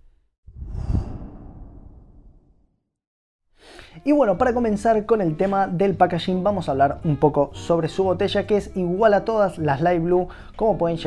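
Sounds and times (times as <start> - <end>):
deep swoosh: 0.5 - 2.6
faint breath: 3.6 - 4.0, 10.3 - 10.6.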